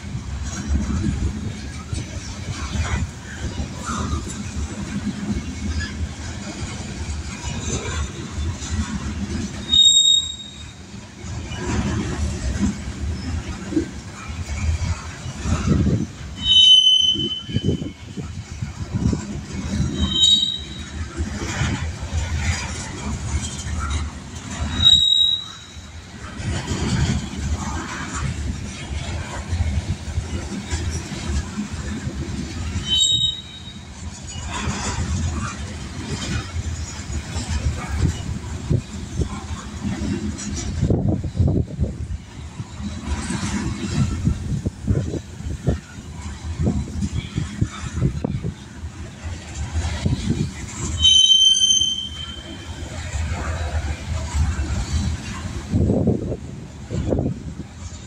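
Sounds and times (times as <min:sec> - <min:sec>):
freight train wheels rumbling: 0:00.0 - 0:58.0
high-pitched wheel squeals: 0:09.5 - 0:10.8, 0:16.4 - 0:18.0, 0:19.8 - 0:21.0, 0:24.5 - 0:26.0, 0:32.7 - 0:34.9, 0:50.9 - 0:52.8.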